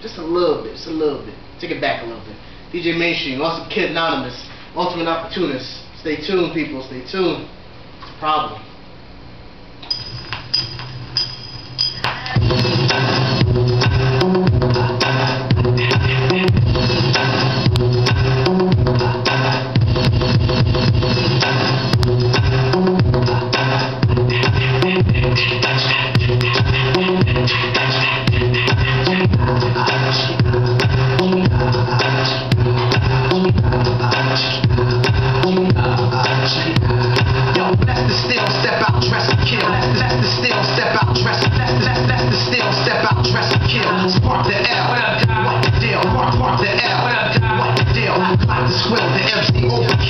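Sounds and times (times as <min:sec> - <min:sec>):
hip-hop beat with heavy bass: 0:11.8 - 0:50.0.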